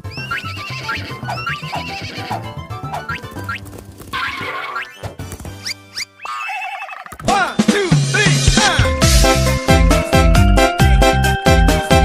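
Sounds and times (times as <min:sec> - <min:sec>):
horse whinny: 0:00.0 - 0:03.2, 0:06.2 - 0:07.1
upbeat children's song: 0:07.2 - 0:12.0.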